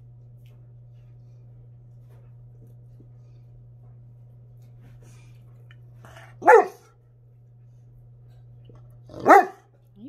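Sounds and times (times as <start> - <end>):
dog barking deeply: 6.4 - 6.9, 9.1 - 9.7.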